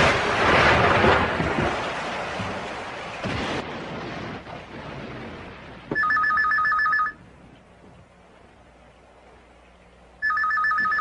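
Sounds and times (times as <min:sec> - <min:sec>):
telephone warbling two-tone ring: 0:05.9 - 0:07.2, 0:10.2 - 0:11.0.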